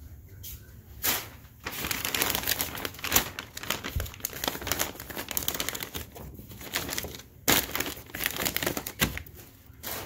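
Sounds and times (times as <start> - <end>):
plastic crinkling on microphone: 1.6 - 10.0.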